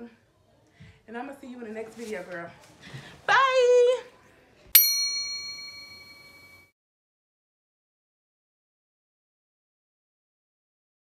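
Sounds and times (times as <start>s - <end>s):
bright bell ding: 4.8s - 6.7s.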